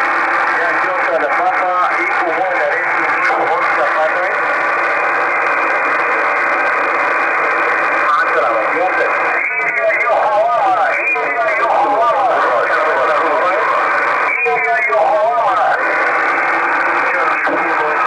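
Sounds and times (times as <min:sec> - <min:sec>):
garbled radio voices: 0:00.0 - 0:18.0
radio static hiss: 0:00.0 - 0:18.0.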